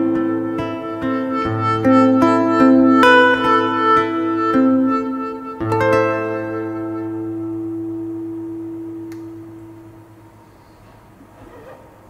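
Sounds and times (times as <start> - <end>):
classical guitar note ringing: 0.0 - 10.8
faint room noise: 0.0 - 12.0
steady low hum: 0.0 - 12.0.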